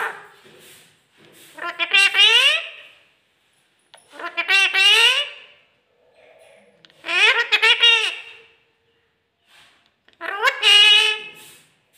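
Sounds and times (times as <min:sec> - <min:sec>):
parakeet talking calls: 0:01.5 - 0:02.9, 0:04.1 - 0:05.5, 0:07.0 - 0:08.5, 0:10.2 - 0:11.4.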